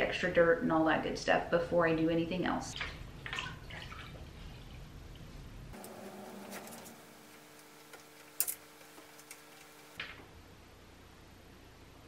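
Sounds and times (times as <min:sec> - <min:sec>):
water drips and splashes: 0:02.7 - 0:04.8
cloth squeezed in water: 0:02.8 - 0:04.4.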